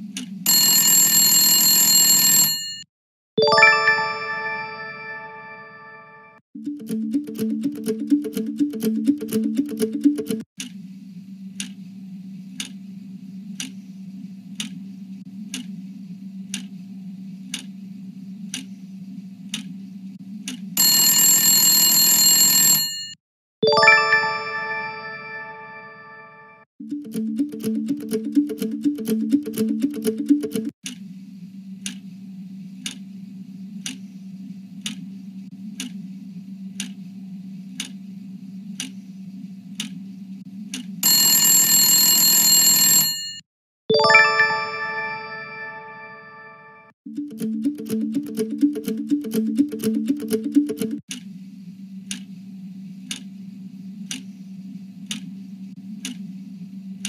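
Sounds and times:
short pulsing musical cue: 3.4 - 10.4, 23.6 - 30.7, 43.9 - 51.0
clock-like ticking: 6.6 - 10.4, 26.8 - 30.7, 47.1 - 51.2.

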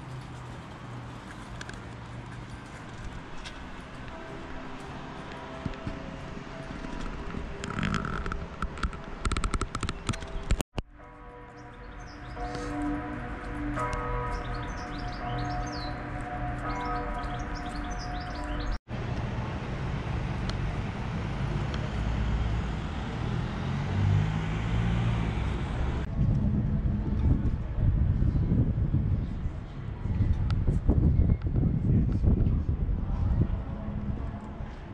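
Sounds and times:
birds chirping: 11.3 - 18.8.

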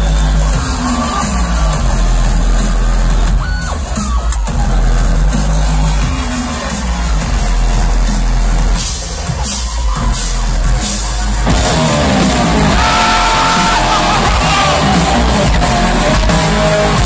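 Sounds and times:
heavy bass and drums: 0.0 - 17.0
rock band playing live: 0.0 - 17.0.

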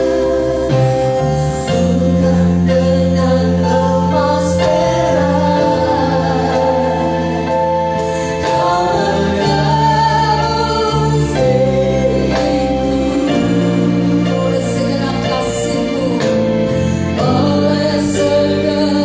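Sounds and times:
worship band playing: 0.0 - 19.0.

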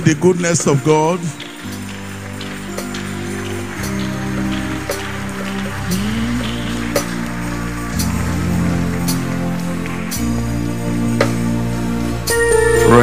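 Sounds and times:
congregation clapping: 0.0 - 12.4
keyboard playing held chords: 0.0 - 13.0.

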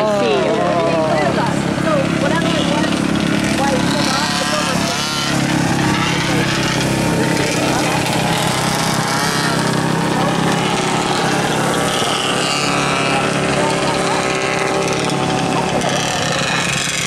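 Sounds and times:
kart engines running: 0.0 - 17.0
spectators' voices: 0.0 - 17.0.

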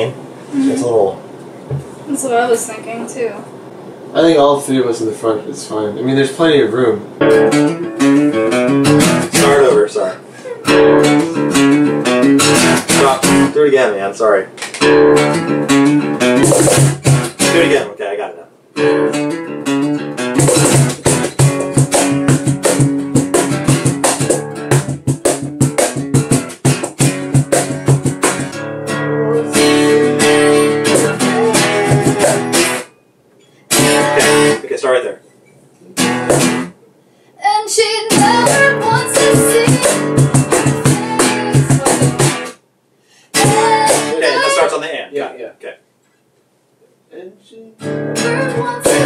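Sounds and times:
cajon hits: 1.7 - 1.9, 10.7 - 13.5, 14.6 - 17.8, 20.2 - 28.6, 29.6 - 32.9, 33.7 - 34.6, 36.0 - 36.7, 38.1 - 42.6, 43.4 - 44.3, 48.6 - 49.0
strummed acoustic guitar: 7.2 - 13.6, 14.8 - 17.9, 18.8 - 33.0, 33.6 - 34.7, 36.0 - 36.8, 38.1 - 42.6, 43.3 - 44.7, 47.8 - 49.0.

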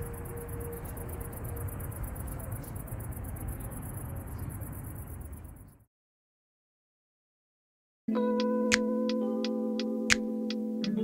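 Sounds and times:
steady outdoor murmur: 0.0 - 5.8
soft music: 8.1 - 11.0.

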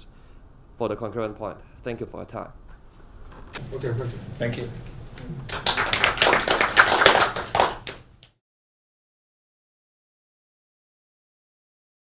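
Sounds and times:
small group clapping: 3.6 - 8.4.

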